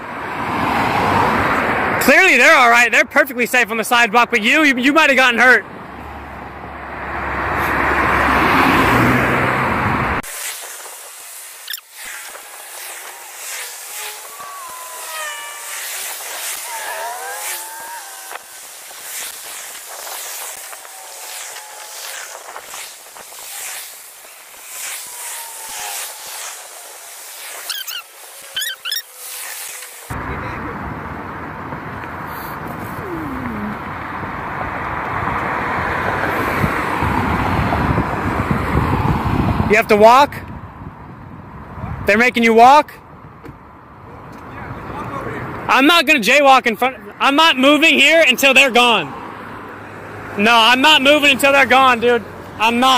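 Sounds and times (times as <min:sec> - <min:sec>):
cars passing: 0:00.0 - 0:42.2, 0:42.8 - 0:52.9.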